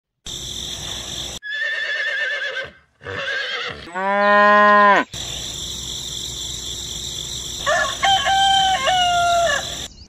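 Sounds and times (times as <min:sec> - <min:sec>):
horse whinnying: 0:01.4 - 0:05.0.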